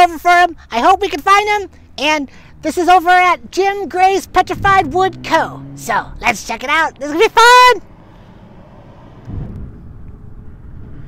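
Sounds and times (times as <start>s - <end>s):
low outdoor rumble: 0.0s - 11.0s
dull thump: 9.2s - 10.2s.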